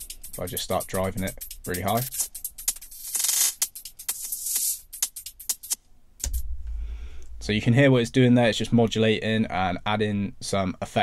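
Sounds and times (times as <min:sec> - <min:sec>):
distorted hi-hat ticks: 0:00.0 - 0:06.5
deep bass note: 0:06.2 - 0:08.1.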